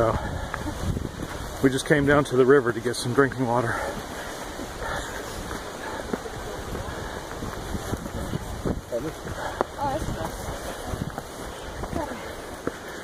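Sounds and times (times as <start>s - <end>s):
wind on microphone: 0.0s - 2.2s, 4.4s - 12.6s
voices of people walking: 0.0s - 13.0s.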